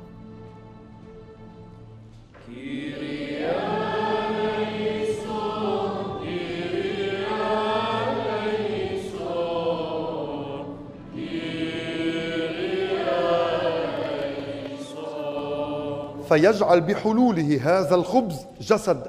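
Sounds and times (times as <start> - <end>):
liturgical chant: 2.4 - 19.0.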